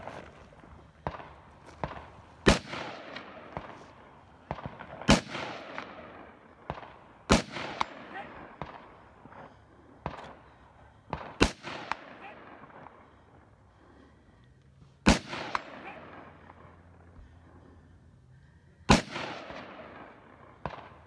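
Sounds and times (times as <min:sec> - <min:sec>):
loud rifle shots: 0:01.0 - 0:09.0, 0:11.1 - 0:12.8, 0:15.0 - 0:16.4, 0:18.9 - 0:21.0.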